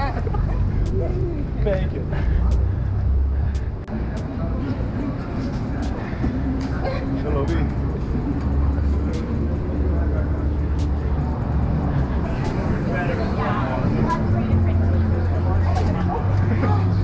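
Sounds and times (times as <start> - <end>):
low traffic rumble: 0.0 - 17.0
people talking nearby: 0.0 - 17.0.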